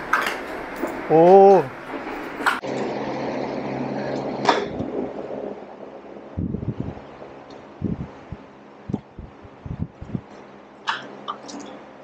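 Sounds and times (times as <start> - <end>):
electric fans humming: 0.0 - 12.0
person calling out: 1.1 - 1.7.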